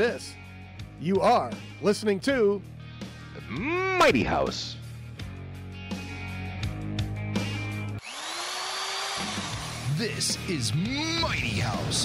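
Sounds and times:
power drill motor whine: 8.0s - 10.0s.

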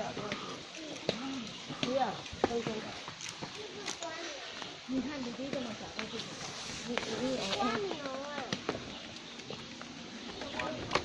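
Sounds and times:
footsteps on stone steps: 0.0s - 11.0s.

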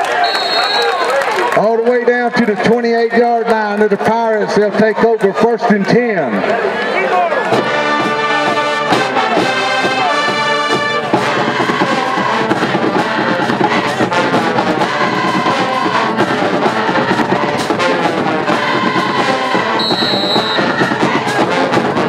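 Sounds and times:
marching band playing: 7.4s - 22.0s.

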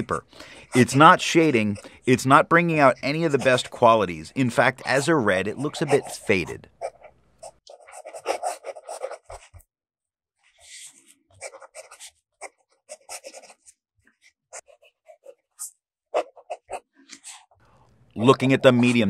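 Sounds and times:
pen nib scratching paper: 4.7s - 9.6s, 10.6s - 17.5s.

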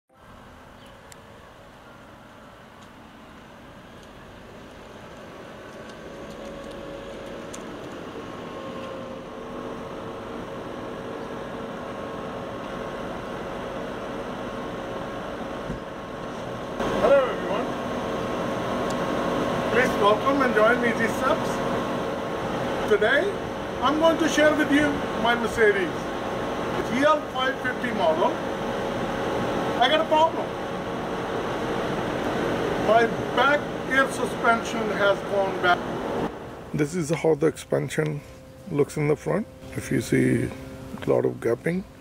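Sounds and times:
steady hum: 0.2s - 42.0s.

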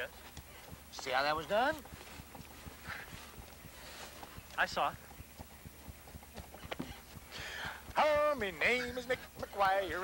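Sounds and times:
footsteps: 0.0s - 10.0s
hooves clip-clopping at a walk: 0.0s - 10.0s.

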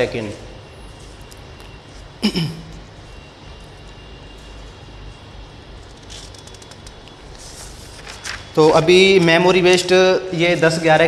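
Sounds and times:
faint high whine: 0.0s - 11.0s
low background noise: 0.0s - 11.0s
paper rustling: 5.8s - 9.8s.

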